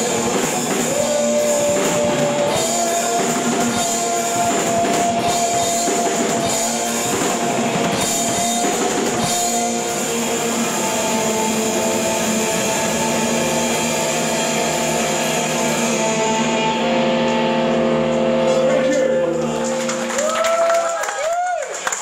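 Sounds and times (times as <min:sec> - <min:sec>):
cymbals washing: 0:00.0 - 0:20.3
guitar and bass chord ringing: 0:00.0 - 0:20.3.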